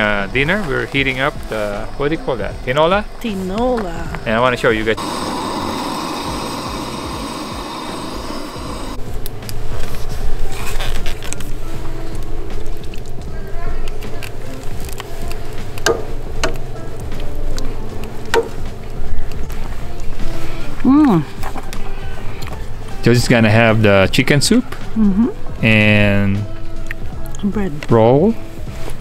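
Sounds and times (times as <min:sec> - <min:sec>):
camp stove burner hissing: 0:00.0 - 0:24.9.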